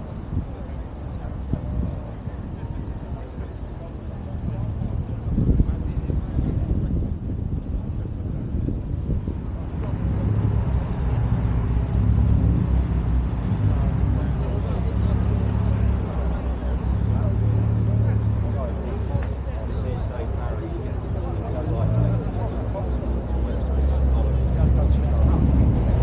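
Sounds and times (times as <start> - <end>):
people chattering: 0.0 - 26.0.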